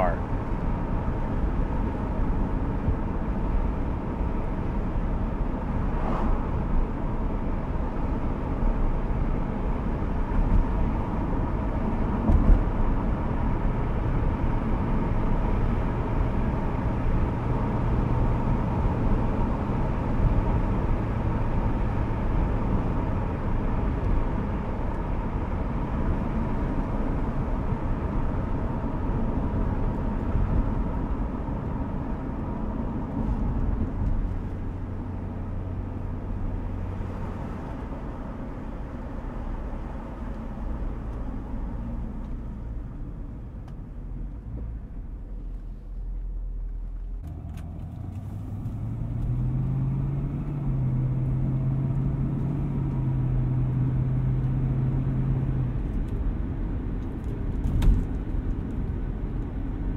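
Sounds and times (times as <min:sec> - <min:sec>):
tyre and road noise: 0:00.0 - 0:59.9.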